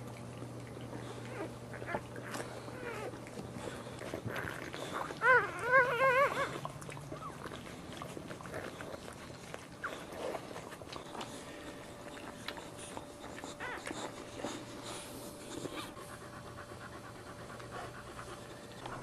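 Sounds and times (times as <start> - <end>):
dog licking: 0.0 - 19.0
puppy squeaking: 5.2 - 6.5.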